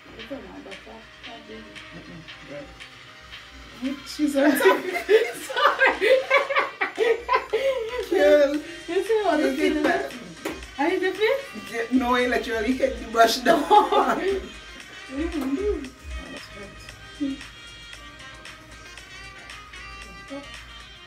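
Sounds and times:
faint background music: 0:00.0 - 0:21.0
woman laughing loudly: 0:04.4 - 0:08.0, 0:13.5 - 0:14.5.

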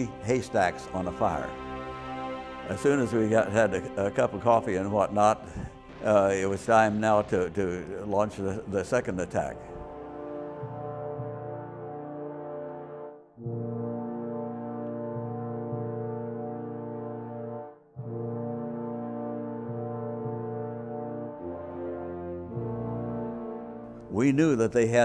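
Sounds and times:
background music of held chords: 0:00.0 - 0:25.0.

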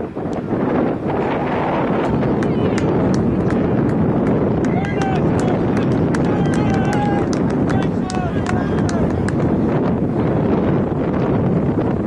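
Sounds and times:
wind rumbling on microphone: 0:00.0 - 0:12.0
high shouts from voices: 0:04.6 - 0:09.2.

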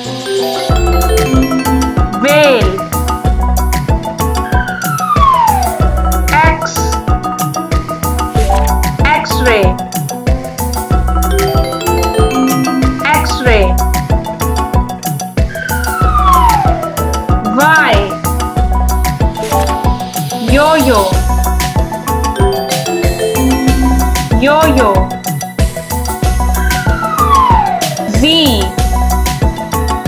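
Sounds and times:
children's background music: 0:00.0 - 0:30.0
whistle-like tone gliding down: 0:04.5 - 0:05.9
cartoon whistle sound effects: 0:15.6 - 0:16.8.

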